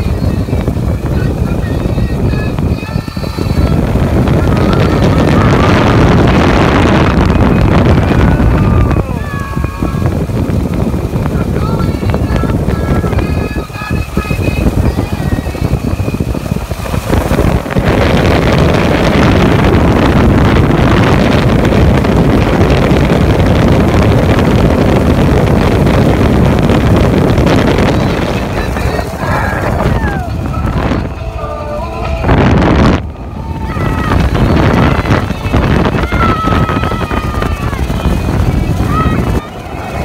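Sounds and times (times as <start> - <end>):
boat engine roaring: 0.0 - 40.0
music playing: 0.0 - 40.0
water rushing: 0.0 - 40.0
wind: 0.0 - 40.0
excited voices: 7.8 - 10.3, 28.1 - 32.0, 33.2 - 40.0.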